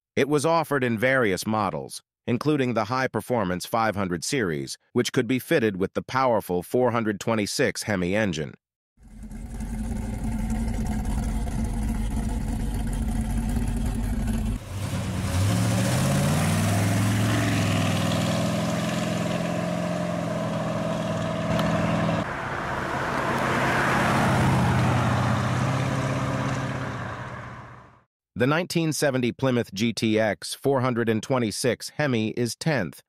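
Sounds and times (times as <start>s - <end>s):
car engine idling: 9.0s - 24.8s
car accelerating away: 9.0s - 28.0s.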